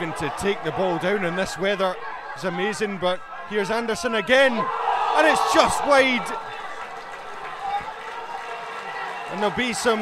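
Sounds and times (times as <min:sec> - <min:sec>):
man commentating: 0:00.0 - 0:06.5, 0:09.3 - 0:10.0.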